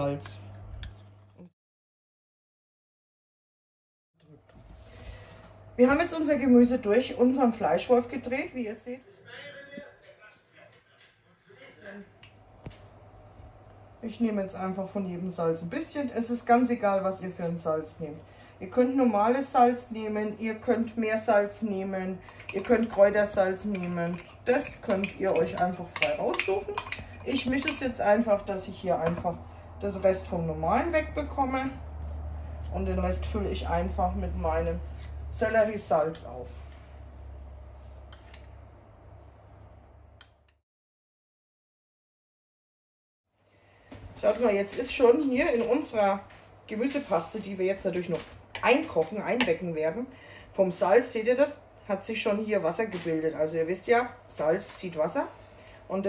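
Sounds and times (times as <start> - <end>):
low steady hum: 4.3 - 40.4
metal spoon clicking against glass jar: 23.7 - 27.9.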